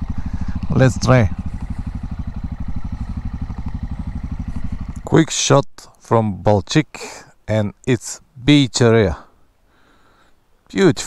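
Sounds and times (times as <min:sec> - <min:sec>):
motorcycle engine running: 0:00.0 - 0:05.4.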